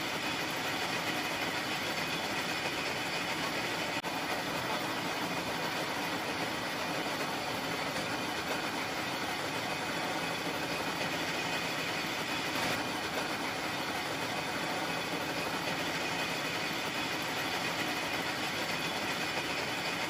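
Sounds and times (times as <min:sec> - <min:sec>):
spinning machinery whirring: 0:00.0 - 0:20.0.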